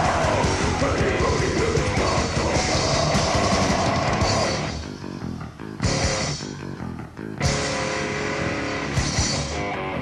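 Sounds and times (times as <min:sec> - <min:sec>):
fast dense drumming: 0:00.0 - 0:04.6
distorted guitars: 0:00.0 - 0:10.0.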